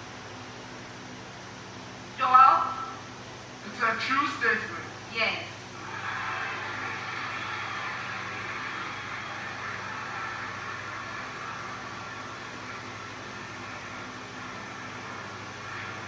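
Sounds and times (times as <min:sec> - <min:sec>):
audience applauding: 0:05.8 - 0:16.0.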